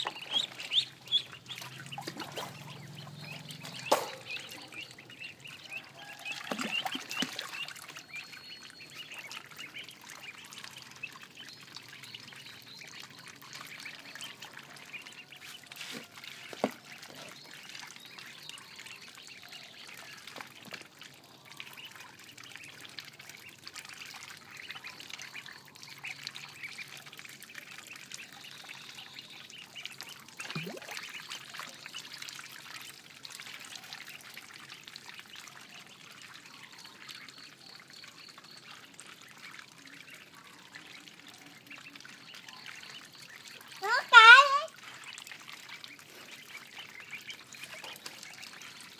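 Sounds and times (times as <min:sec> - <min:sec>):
ducklings peeping: 0:00.0 - 0:48.9.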